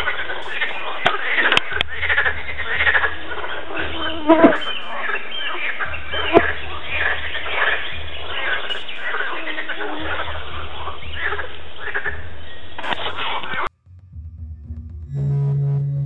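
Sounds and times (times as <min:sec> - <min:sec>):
frogs croaking: 0:00.0 - 0:13.6.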